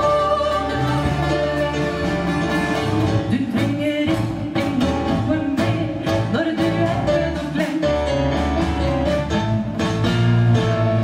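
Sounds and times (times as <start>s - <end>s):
woman singing: 0.0s - 8.2s
drums: 0.0s - 11.0s
guitars: 0.0s - 11.0s.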